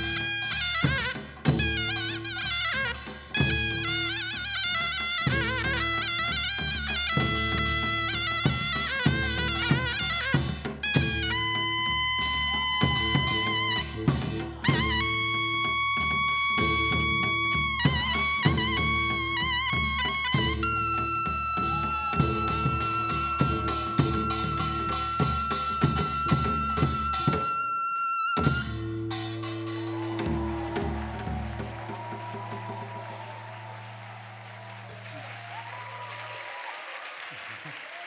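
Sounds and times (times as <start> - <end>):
percussion ensemble beat: 0.0 - 27.6, 28.4 - 36.3
shawm melody: 0.0 - 35.3.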